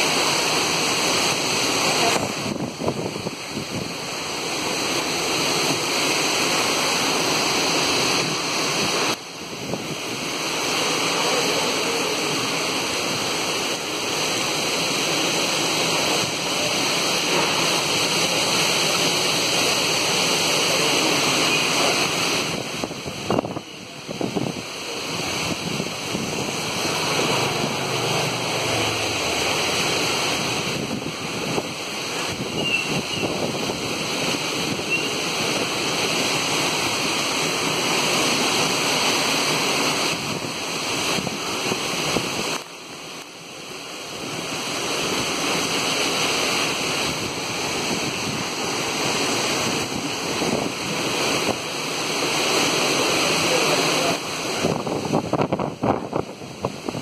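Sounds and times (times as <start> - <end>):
strong wind through palms: 0.0 - 57.0
wind buffeting microphone: 54.6 - 57.0.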